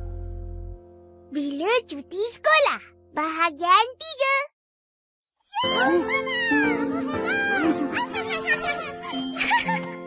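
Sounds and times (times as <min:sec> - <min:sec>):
background music: 0:05.6 - 0:10.0.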